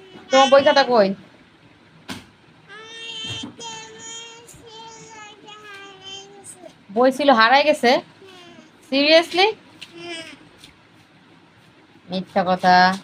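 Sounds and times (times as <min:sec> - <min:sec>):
child-like voice singing softly: 0:00.0 - 0:00.4, 0:02.7 - 0:06.8, 0:08.2 - 0:08.8.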